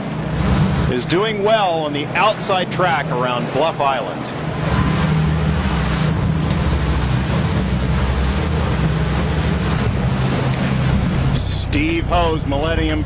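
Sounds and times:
boat engine humming: 0.0 - 13.0
sea water splashing: 0.0 - 13.0.

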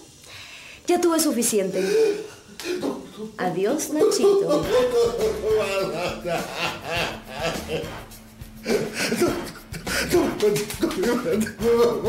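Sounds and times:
man groaning and gasping: 8.6 - 10.4.

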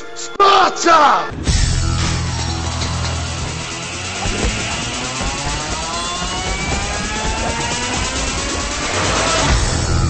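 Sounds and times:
background music: 0.0 - 10.0
rising tonal sweep: 1.8 - 10.0.

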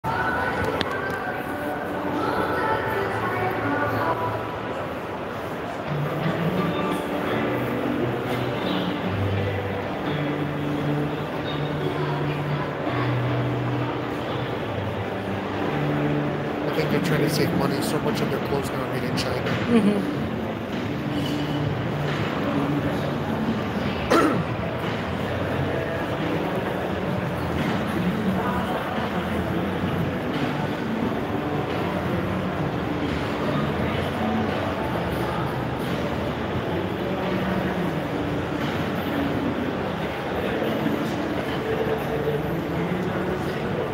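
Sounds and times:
distant voices and bustle: 0.0 - 43.9
shopping mall crowd hubbub: 0.0 - 43.9.

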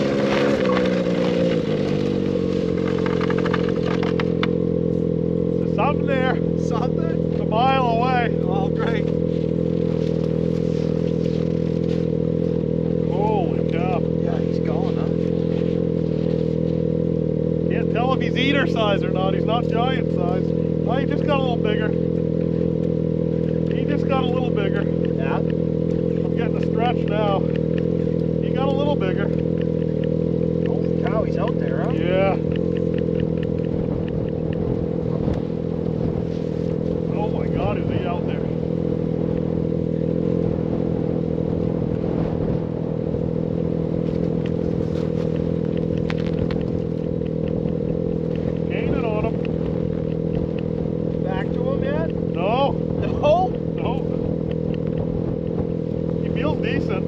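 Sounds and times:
voices talking: 0.0 - 10.7, 12.6 - 16.0, 17.5 - 35.0, 36.8 - 38.9, 46.5 - 49.8, 51.0 - 55.0, 56.2 - 57.0
small engine humming: 0.0 - 57.0.

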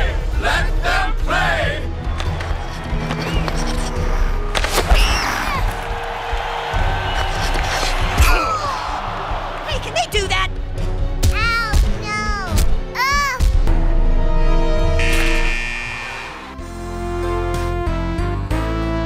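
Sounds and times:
background music: 0.0 - 19.0
arena crowd noise: 5.3 - 10.7.

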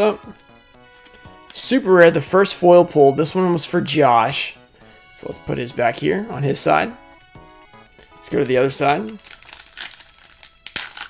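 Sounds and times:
foil wrapper crinkling: 8.0 - 11.0
foil tearing crackle: 9.0 - 11.0.

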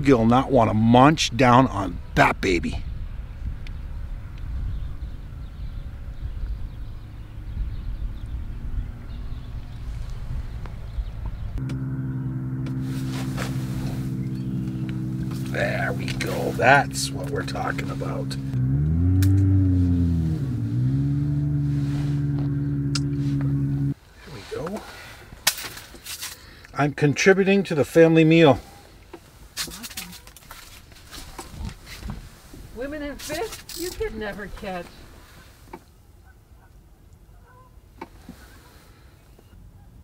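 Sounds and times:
low hum of held tones: 11.0 - 24.0
person speaking: 15.5 - 18.5.

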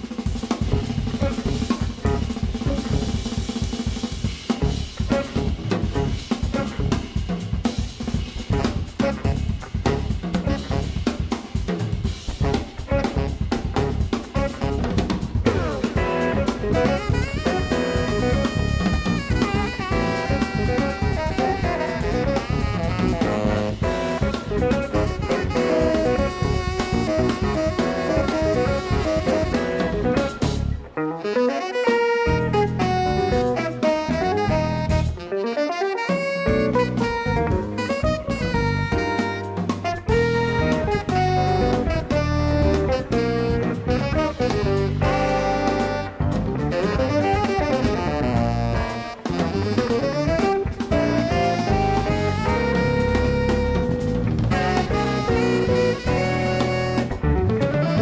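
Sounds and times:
bass guitar: 0.0 - 58.0
drum kit: 0.0 - 58.0
electric guitar: 0.0 - 58.0
saxophone melody: 0.7 - 3.3, 4.6 - 7.2, 8.4 - 11.3, 12.4 - 58.0.

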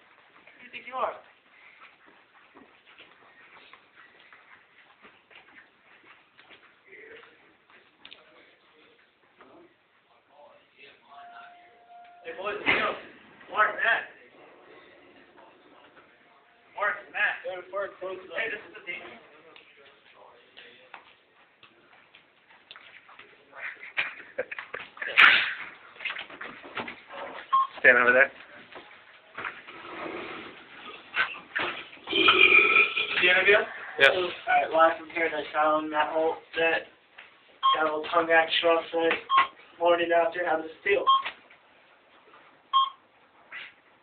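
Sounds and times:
short electronic beep: 11.1 - 12.4.

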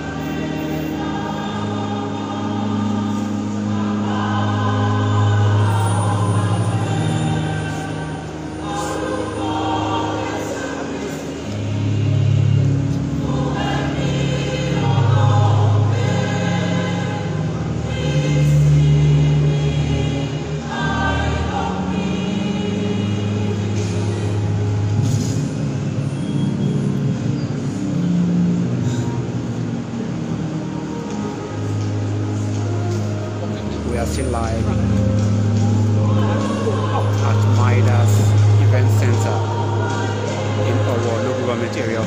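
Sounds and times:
church choir singing a hymn: 0.0 - 42.0
low accompaniment: 0.0 - 42.0.

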